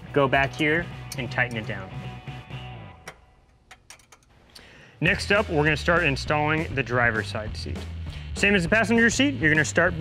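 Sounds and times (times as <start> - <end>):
socket ratchet clicking: 3.1 - 4.3.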